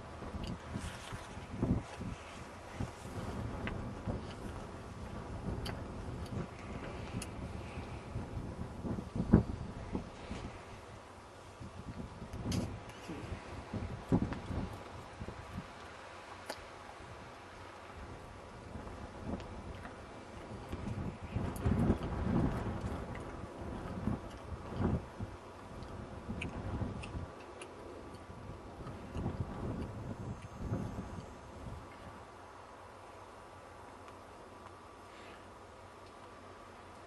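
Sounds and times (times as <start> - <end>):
wind buffeting microphone: 0.0 - 32.4
faint sharp ticks: 5.5 - 8.0, 25.8 - 31.3.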